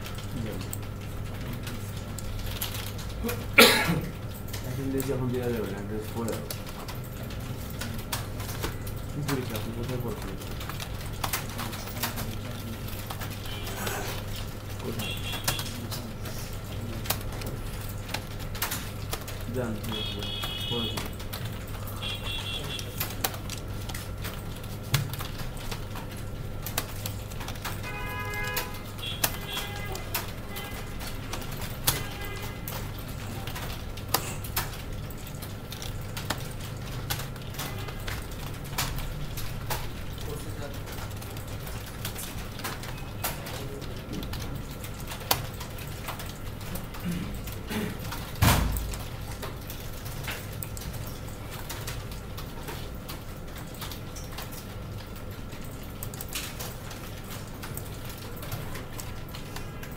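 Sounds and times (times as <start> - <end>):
computer keyboard typing: 0.0 - 59.9.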